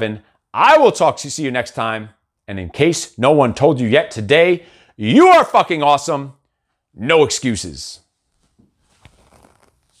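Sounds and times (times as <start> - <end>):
handling noises near microphone: 8.3 - 10.0.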